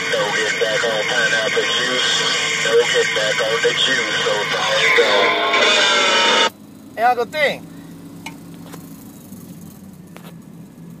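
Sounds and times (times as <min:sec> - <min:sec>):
radio receiver hissing: 0:04.0 - 0:06.5.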